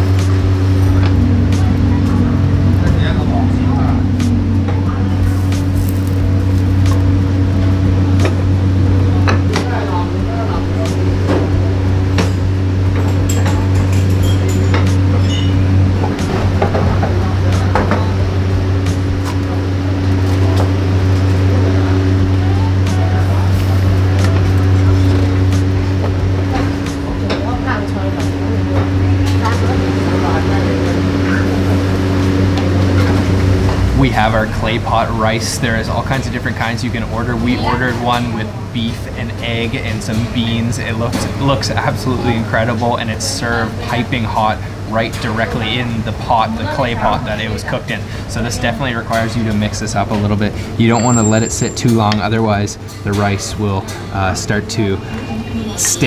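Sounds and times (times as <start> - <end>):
gas burners and hood humming: 0.0 - 56.0.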